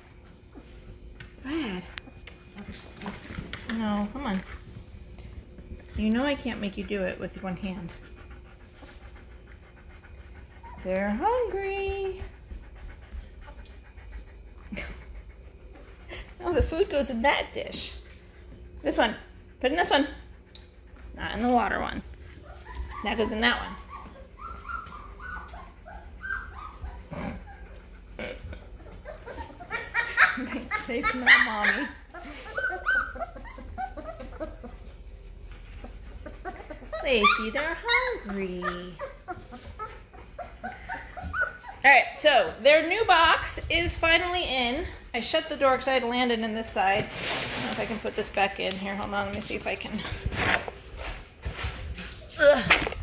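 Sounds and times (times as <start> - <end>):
dog panting: 2.5 - 43.3
puppies whimpering and squeaking: 5.6 - 17.9, 22.1 - 45.4.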